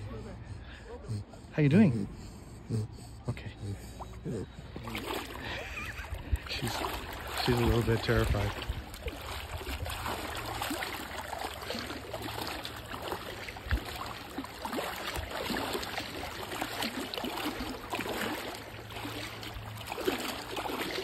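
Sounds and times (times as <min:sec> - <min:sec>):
wading through shallow water: 0:00.0 - 0:21.0.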